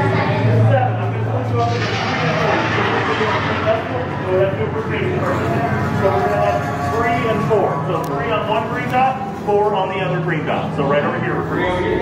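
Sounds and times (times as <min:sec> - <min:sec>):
people talking indistinctly: 0:00.0 - 0:12.0
steady low hum: 0:00.0 - 0:12.0.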